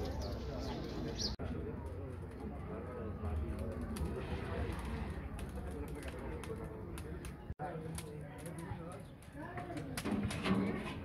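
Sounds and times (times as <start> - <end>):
people talking: 0.0 - 11.0.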